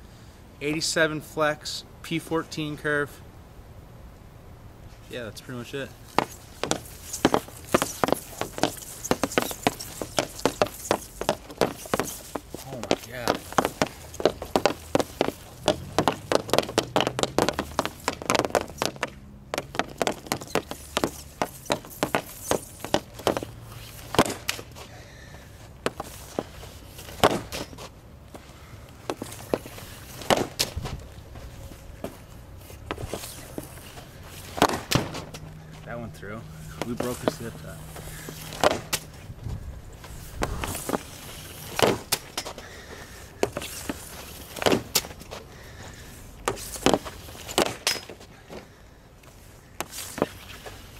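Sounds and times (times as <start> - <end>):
sticks cracking on pucks: 6.1 - 24.9, 25.8 - 27.9, 29.0 - 30.8, 32.9 - 35.5, 38.1 - 39.1, 40.6 - 42.7, 43.4 - 45.4, 46.5 - 48.3.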